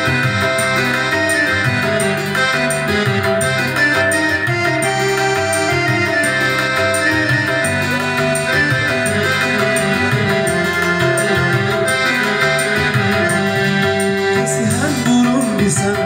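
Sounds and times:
keyboard playing melody and chords: 0.0s - 16.0s
steady beat: 0.0s - 16.0s.

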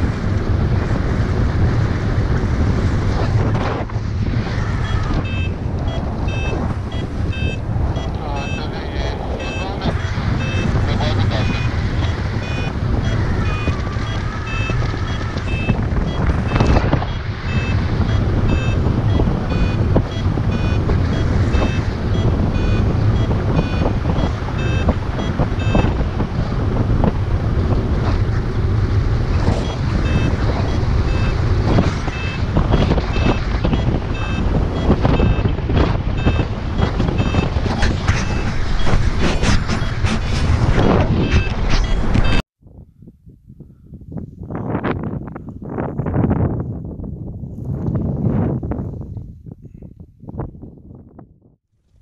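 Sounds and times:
wind buffeting microphone: 0.0s - 51.6s
rapid high beeps: 4.8s - 26.0s, 29.6s - 35.5s, 36.2s - 40.2s, 40.8s - 42.4s.

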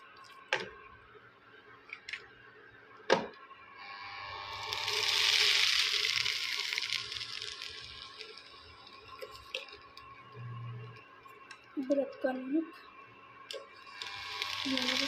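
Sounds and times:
hiss from cooking pan: 4.5s - 9.7s, 13.9s - 15.0s.

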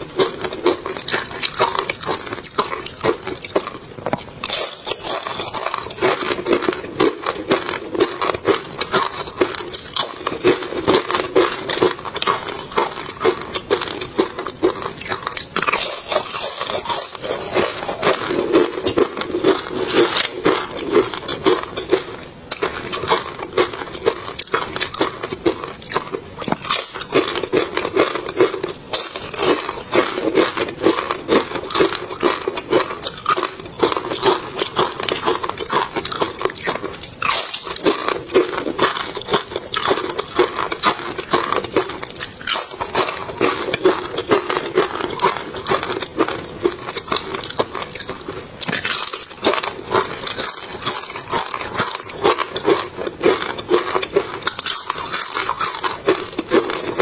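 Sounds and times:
chewing and crunching food: 0.0s - 57.0s.

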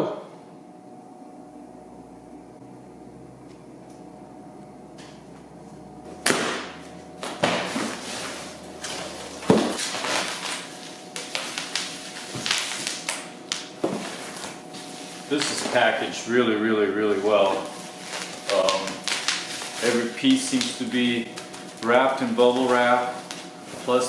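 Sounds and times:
steady low hum: 0.0s - 24.0s
packing materials crinkling: 7.2s - 24.0s.

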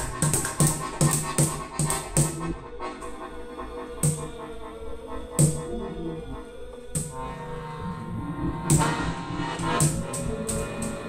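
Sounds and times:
accordion holding sustained chords: 0.0s - 11.0s.

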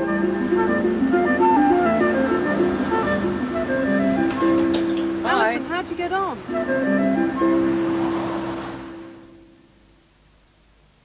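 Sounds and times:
closing credits music: 0.0s - 9.7s
faint hiss: 0.0s - 11.0s.

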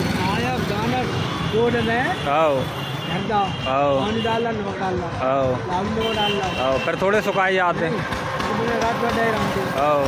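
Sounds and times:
street traffic hum: 0.0s - 10.0s
people talking: 0.2s - 10.0s.

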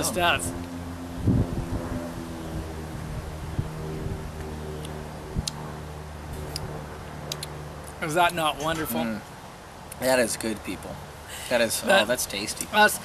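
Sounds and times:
low hum of held tones: 0.0s - 12.9s.

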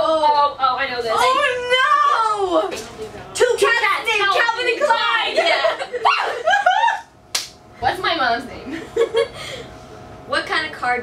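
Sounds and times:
girls laughing and squealing: 4.8s - 7.1s
sharp hand slap: 7.3s - 7.6s.

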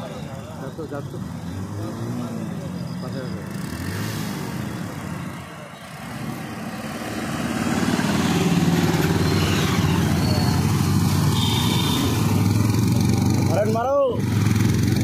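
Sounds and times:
motorcycle engines running: 0.0s - 15.0s.

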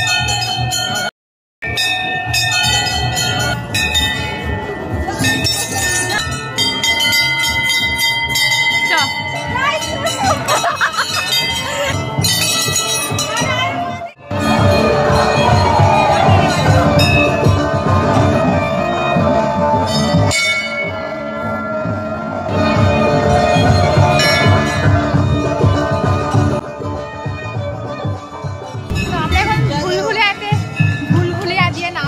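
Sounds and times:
metal bells ringing: 0.0s - 26.6s, 28.4s - 32.0s
background music with drumbeat: 1.6s - 32.0s.

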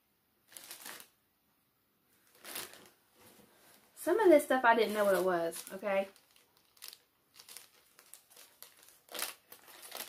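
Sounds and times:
bag rustling: 2.2s - 3.8s, 4.8s - 10.0s.

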